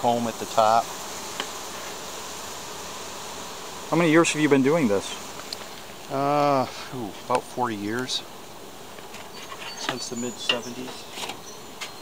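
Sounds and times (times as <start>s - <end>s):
honeybees buzzing: 0.0s - 12.0s.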